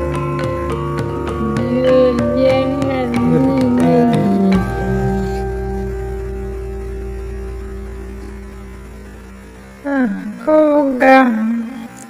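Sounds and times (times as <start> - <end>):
indian classical music drone: 0.0 - 12.0
sliding melodic phrase: 1.4 - 11.6.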